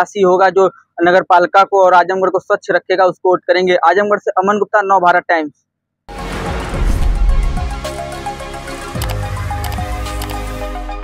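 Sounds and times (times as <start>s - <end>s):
sharp hit: 6.1s - 8.4s.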